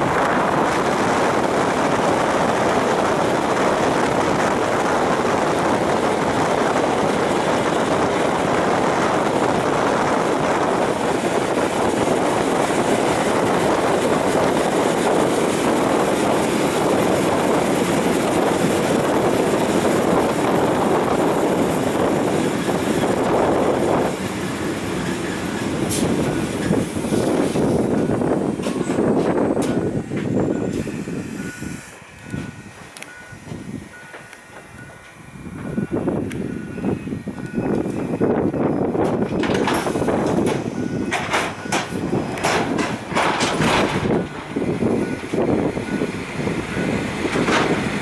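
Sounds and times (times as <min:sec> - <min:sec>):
train running at speed: 0:00.0 - 0:48.0.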